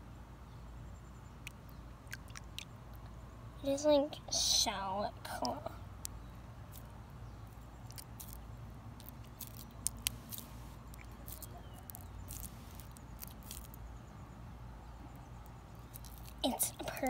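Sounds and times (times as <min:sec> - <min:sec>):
low steady hum: 0:00.0 - 0:17.0
wet clicks and crackles: 0:01.4 - 0:03.1, 0:05.3 - 0:13.8, 0:15.1 - 0:17.0.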